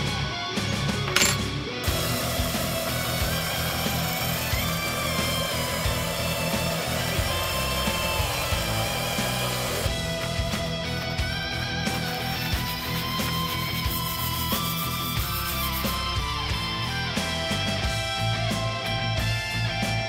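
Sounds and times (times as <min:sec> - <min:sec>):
heavy metal music: 0:00.0 - 0:20.0
belt sander grinding metal tube: 0:01.2 - 0:10.0, 0:10.9 - 0:16.4.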